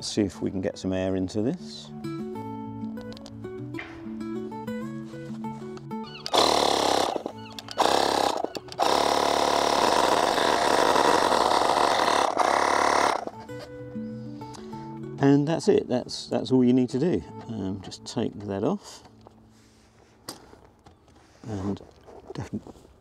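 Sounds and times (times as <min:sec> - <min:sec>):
electric inflator running: 0:06.2 - 0:13.4.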